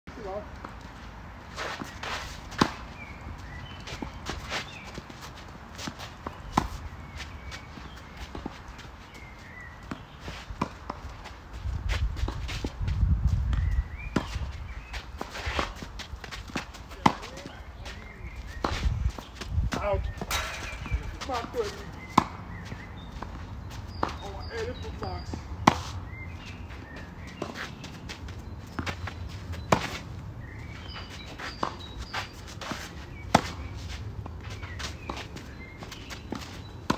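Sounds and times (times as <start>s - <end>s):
footsteps scuffing on clay: 0.6s - 36.9s
ball bouncing: 19.7s - 22.4s
racket striking tennis ball: 20.1s - 23.3s, 25.6s - 26.0s.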